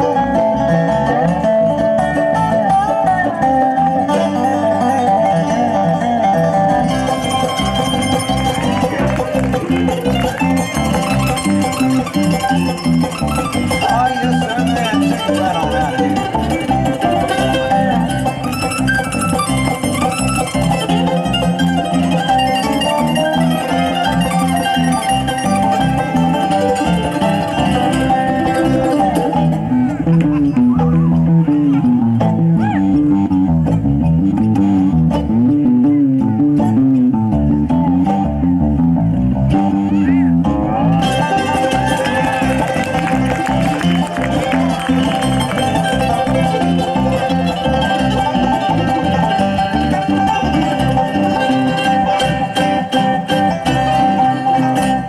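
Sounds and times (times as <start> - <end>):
banjo: 0.0 - 55.0
dobro: 0.0 - 55.0
fretless electric bass: 0.0 - 55.0
mandolin: 0.0 - 55.0.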